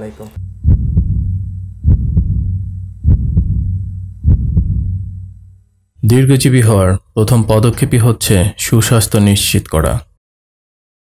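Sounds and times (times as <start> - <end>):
low hum: 0.3 - 8.6
heartbeat thumps: 0.4 - 5.7.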